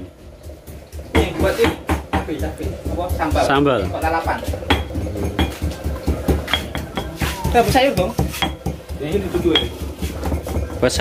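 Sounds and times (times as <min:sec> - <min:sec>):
pestle pounding dull thuds: 0:00.4 - 0:11.0
pestle clinking on stone: 0:04.5 - 0:11.0.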